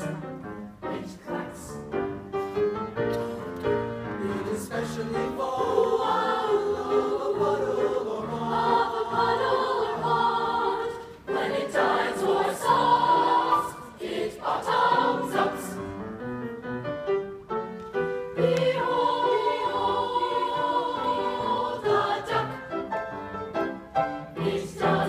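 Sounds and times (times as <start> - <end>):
choir singing in harmony: 0.0 - 16.8, 17.5 - 25.0.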